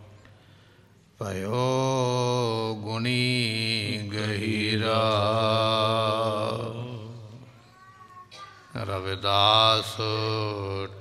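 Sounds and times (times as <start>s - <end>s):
person singing devotional song: 1.2s - 7.5s, 8.7s - 11.0s.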